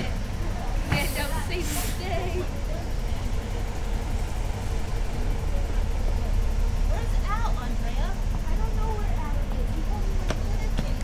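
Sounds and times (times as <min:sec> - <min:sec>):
bus engine low rumble: 0:00.0 - 0:11.0
voices: 0:00.0 - 0:11.0.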